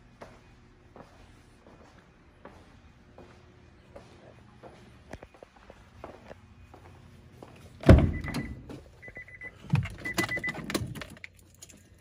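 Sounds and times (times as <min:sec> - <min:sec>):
faint footsteps on hard floor: 0:00.1 - 0:07.6.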